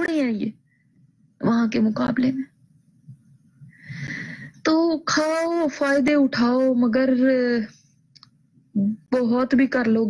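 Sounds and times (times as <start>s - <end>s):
woman speaking: 0.0s - 0.6s, 1.4s - 2.6s, 4.6s - 7.9s, 8.7s - 10.0s.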